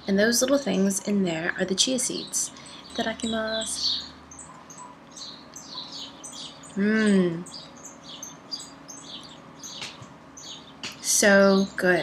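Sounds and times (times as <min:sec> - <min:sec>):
faint bird chirps: 0:00.0 - 0:12.0.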